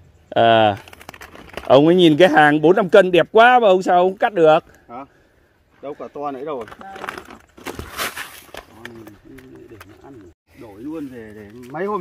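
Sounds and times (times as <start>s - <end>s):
rough scraping rustle: 0.4s - 2.8s, 4.3s - 12.0s
man talking: 8.7s - 12.0s.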